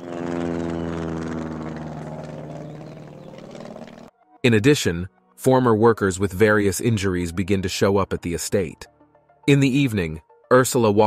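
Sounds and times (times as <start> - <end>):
propeller plane flying overhead: 0.0 - 4.2.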